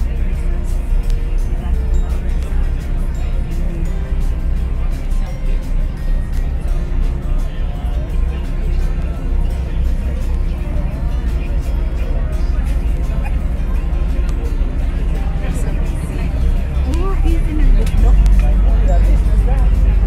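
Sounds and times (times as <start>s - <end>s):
ferry engines droning: 0.0s - 20.0s
music: 0.0s - 20.0s
voices: 0.0s - 20.0s.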